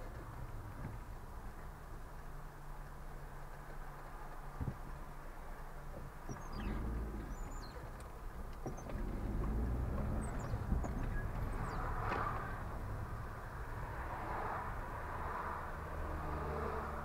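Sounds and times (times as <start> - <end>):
car engine and road rumble: 0.0 - 17.0.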